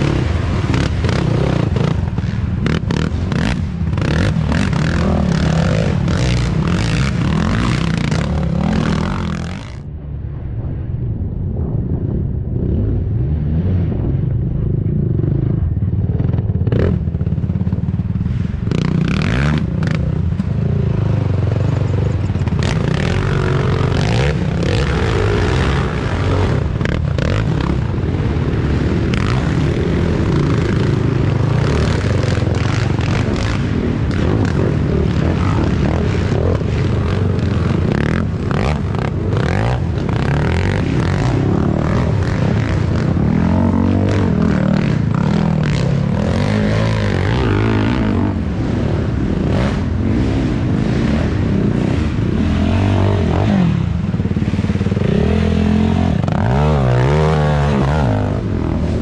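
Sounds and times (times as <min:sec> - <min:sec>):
atv engines revving: 0:00.0 - 0:10.2, 0:12.4 - 0:59.0.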